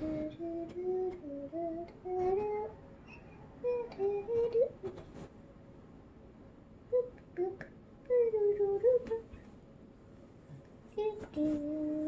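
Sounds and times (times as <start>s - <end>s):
girl humming a tune: 0.0s - 2.7s, 3.6s - 5.0s, 6.9s - 9.3s, 11.0s - 12.0s.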